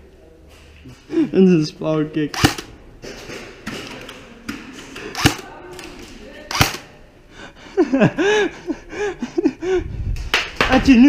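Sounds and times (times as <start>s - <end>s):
airsoft gun shots: 2.4s - 2.7s, 5.1s - 5.5s, 6.5s - 6.9s.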